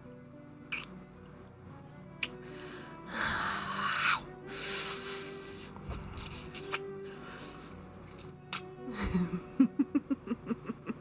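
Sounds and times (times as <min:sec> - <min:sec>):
quiet background music: 0:00.0 - 0:11.0
wet lip smacks: 0:00.7 - 0:01.0, 0:02.2 - 0:02.4, 0:06.2 - 0:07.0, 0:08.2 - 0:08.8.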